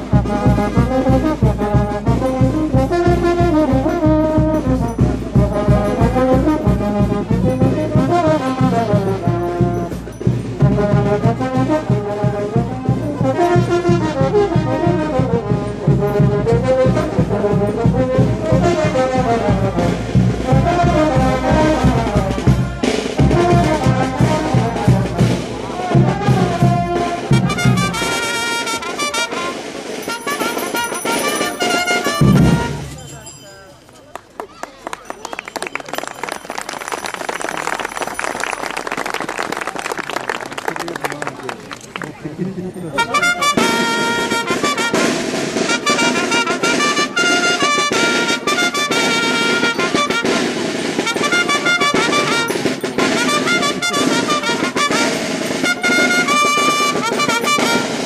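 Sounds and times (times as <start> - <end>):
brass band dance tune: 0.0 - 33.4, 42.7 - 58.0
fast drum beat: 29.9 - 33.0.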